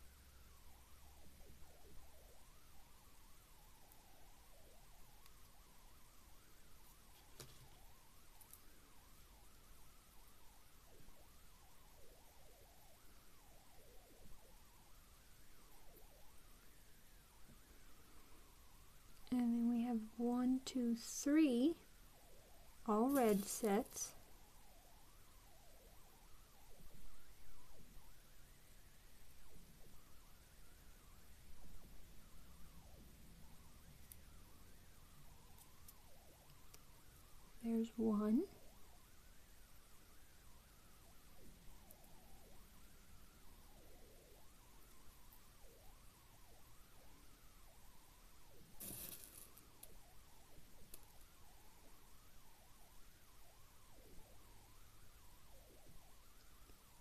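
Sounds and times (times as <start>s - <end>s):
faint wavering tone: 0.0s - 57.0s
soft handling noises: 22.9s - 24.2s
beads rustling in plastic container: 23.1s - 24.1s.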